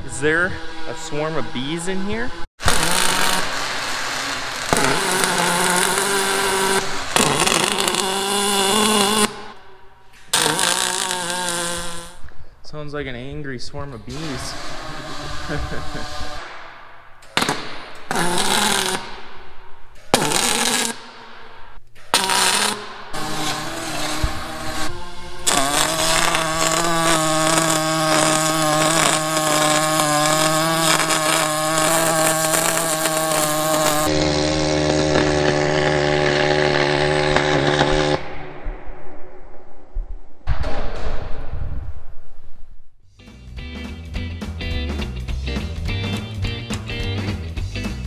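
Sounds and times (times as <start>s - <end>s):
welding arc buzzing: 0.0s - 12.3s, 14.1s - 38.4s.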